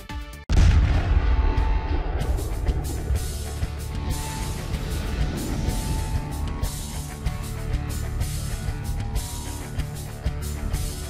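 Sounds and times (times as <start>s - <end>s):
background music: 0.0s - 11.0s
explosion with deep rumble: 0.5s - 7.2s.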